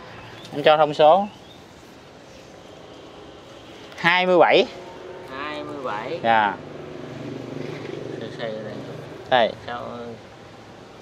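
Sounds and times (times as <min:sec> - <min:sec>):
man speaking: 0:04.0 - 0:04.8, 0:05.5 - 0:06.7.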